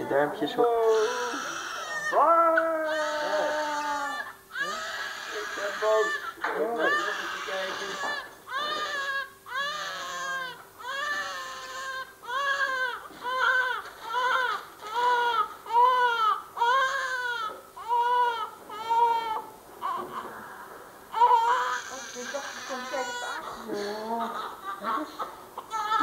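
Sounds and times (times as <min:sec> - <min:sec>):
newborn baby crying: 0:00.8 - 0:26.0.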